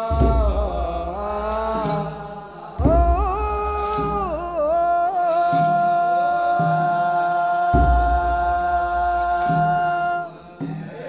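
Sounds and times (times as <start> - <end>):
sistrum jingling: 0.0 - 7.0, 7.7 - 11.0
voices chanting in unison: 0.0 - 11.0.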